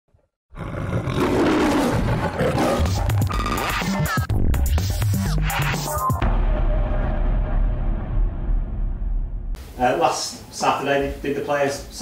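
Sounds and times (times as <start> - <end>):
tiger roaring: 0.5 - 3.8
intro music with low beat: 2.8 - 9.8.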